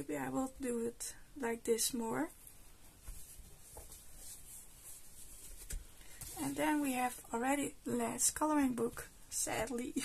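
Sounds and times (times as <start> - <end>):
soft thumps of book: 2.9 - 6.6
hands rubbing book cover: 2.9 - 7.0.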